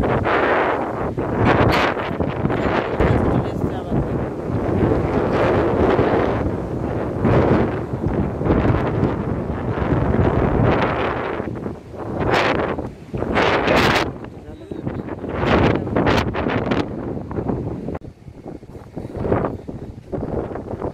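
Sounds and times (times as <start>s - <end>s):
waves breaking: 0.0s - 20.9s
wind gusts on microphone: 0.0s - 20.9s.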